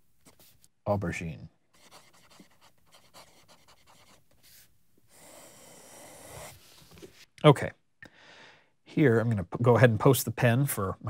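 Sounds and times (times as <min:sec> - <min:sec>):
pen nib scratching paper: 0:01.8 - 0:06.7
soft breath: 0:08.0 - 0:08.8.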